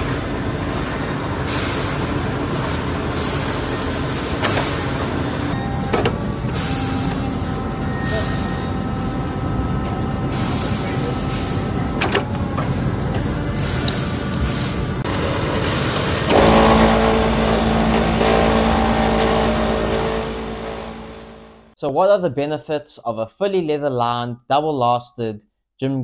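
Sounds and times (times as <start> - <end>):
machine clunk: 5.6 - 6.8, 11.9 - 12.7
motor hum of spinning discs: 15.1 - 21.7.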